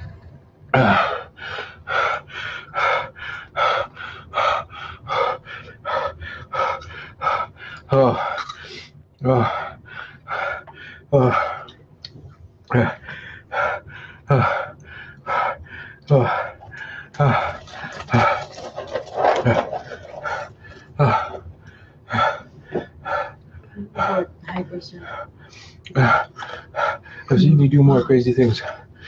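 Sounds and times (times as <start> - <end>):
man panting: 0.8 - 11.7, 12.7 - 24.2, 25.0 - 29.0.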